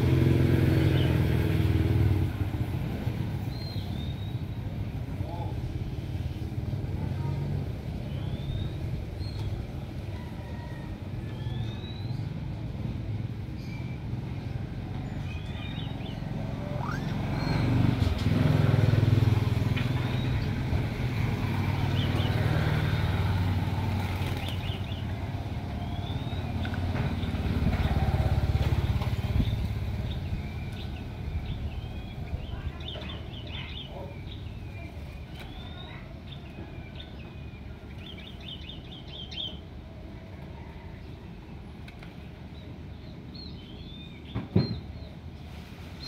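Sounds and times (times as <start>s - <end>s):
passing vehicles engine rumble: 0.0s - 46.0s
whistled bird calls: 16.6s - 17.7s.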